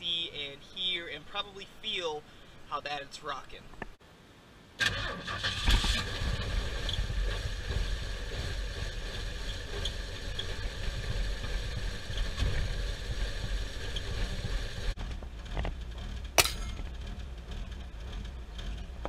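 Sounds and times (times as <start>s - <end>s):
engine cold start: 4.8s - 10.7s
engine idling roughly with misfire: 4.8s - 19.0s.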